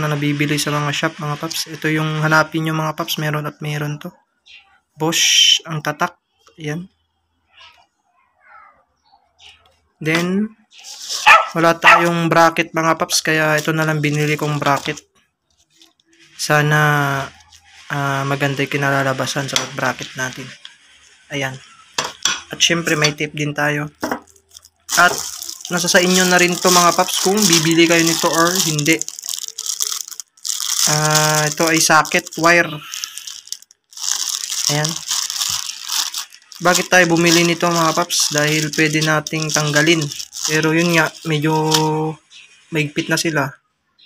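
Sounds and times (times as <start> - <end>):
plastic bag crinkling: 10.1 - 43.4.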